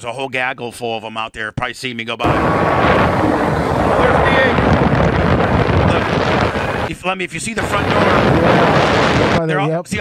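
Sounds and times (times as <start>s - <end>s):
wind rushing over microphone: 2.2s - 9.4s.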